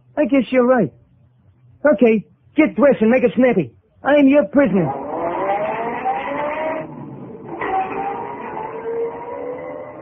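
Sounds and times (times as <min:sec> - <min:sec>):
car accelerating: 0:04.8 - 0:10.0.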